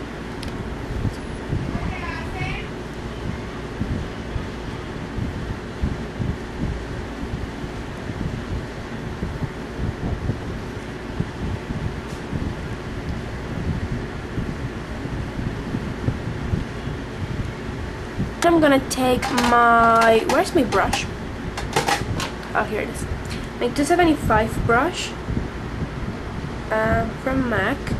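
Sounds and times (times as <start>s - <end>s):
faint steady hum: 0.0s - 27.9s.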